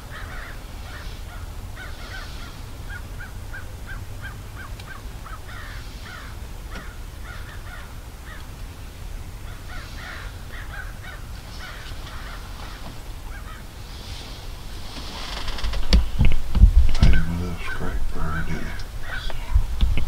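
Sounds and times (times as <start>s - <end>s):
birds calling: 0.0s - 20.0s
steady low rumble: 0.0s - 20.0s.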